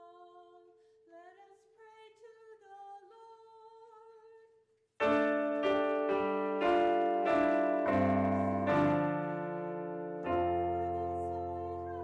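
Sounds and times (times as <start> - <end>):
woman singing unaccompanied: 0.0 - 4.5, 10.3 - 12.0.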